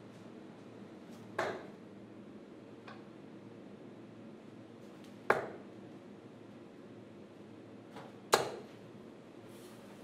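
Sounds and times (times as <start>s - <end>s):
dart striking dartboard: 1.4s - 1.7s.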